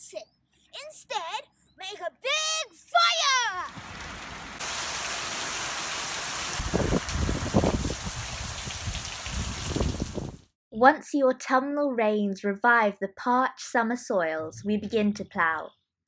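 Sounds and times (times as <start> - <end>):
heavy rain falling: 3.7 - 10.4.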